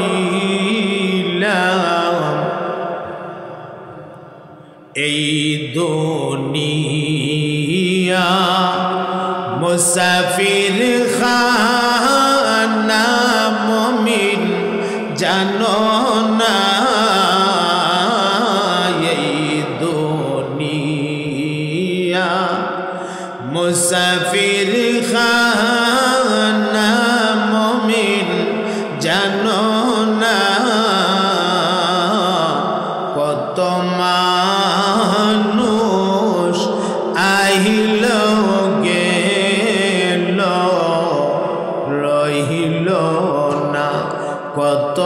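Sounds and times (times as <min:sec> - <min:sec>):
man chanting through microphone: 0:00.0 - 0:45.0.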